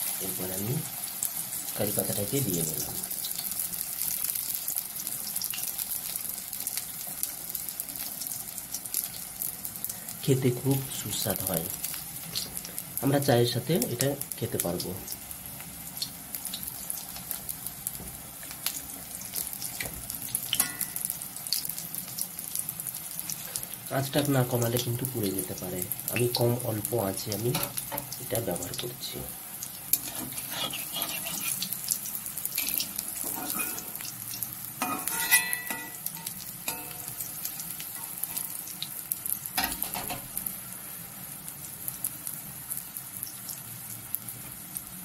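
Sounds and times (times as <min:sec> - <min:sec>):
leaves deep-frying in hot oil: 0:00.0 - 0:45.0.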